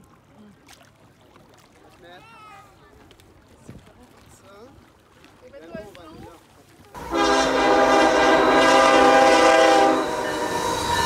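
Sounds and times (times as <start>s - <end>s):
lapping water: 0.0s - 8.6s
wind: 0.0s - 11.0s.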